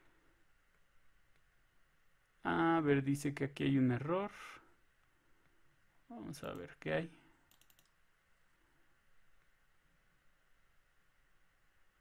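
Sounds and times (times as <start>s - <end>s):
computer mouse clicks: 7.4s - 8.0s.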